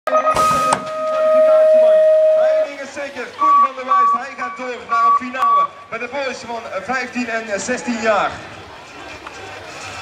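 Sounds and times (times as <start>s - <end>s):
electronic start-gate tone: 0.1s - 2.8s
start gate slamming down: 0.2s - 2.7s.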